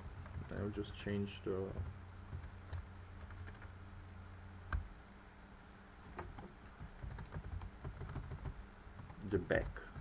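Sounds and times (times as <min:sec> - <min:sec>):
low steady hum: 0:00.0 - 0:10.0
faint keyboard keystrokes: 0:06.1 - 0:10.0.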